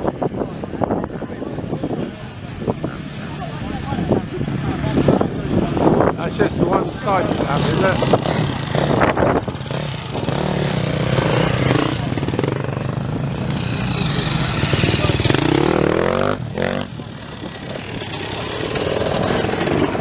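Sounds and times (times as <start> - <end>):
motorcycle engine revving: 3.7 - 20.0.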